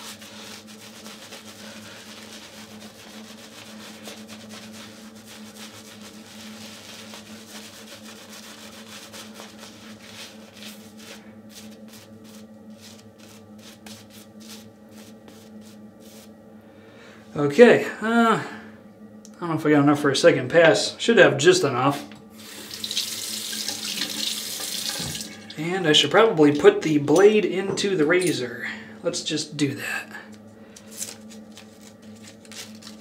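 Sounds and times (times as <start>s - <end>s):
shaving brush swirling lather: 0.0s - 16.3s, 22.3s - 26.0s
steady low hum: 0.0s - 33.0s.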